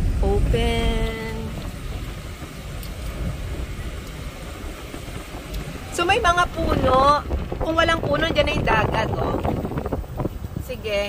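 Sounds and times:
car road and wind rumble: 0:00.0 - 0:11.0.

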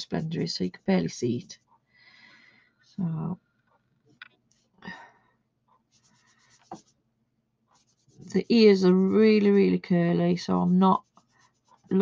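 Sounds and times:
sponge scrubbing pastel pan: 0:07.7 - 0:12.0.

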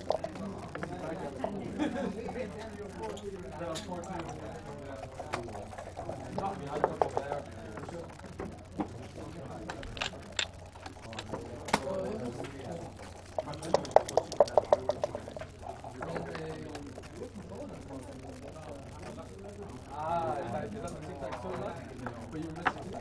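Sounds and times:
dice rattling in cup: 0:04.2 - 0:17.2
checkers clicking on board: 0:09.7 - 0:15.4.

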